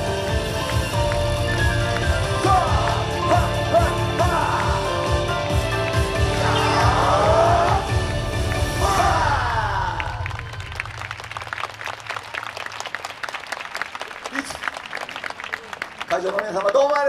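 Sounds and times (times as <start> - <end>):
dance music with voices: 0.0 - 10.6
audience applause: 0.3 - 17.0.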